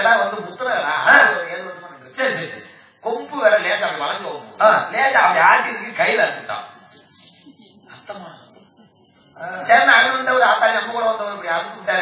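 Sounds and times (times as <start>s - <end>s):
crickets chirping: 0.0s - 12.0s
faint voice: 6.6s - 9.8s.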